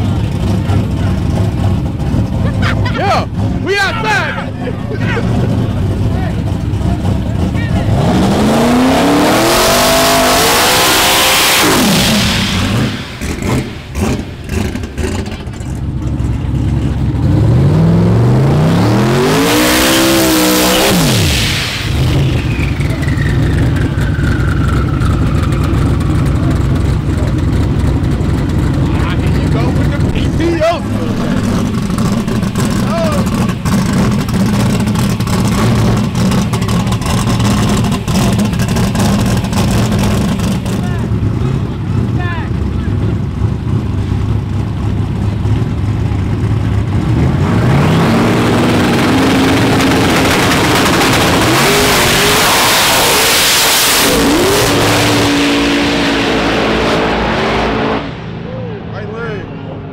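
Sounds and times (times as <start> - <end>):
crowd voices: 0.0 - 9.5, 21.7 - 44.2, 58.2 - 59.9
engines idling: 0.0 - 53.2
race car engines revving hard: 0.0 - 59.9
falling whine: 7.8 - 15.4.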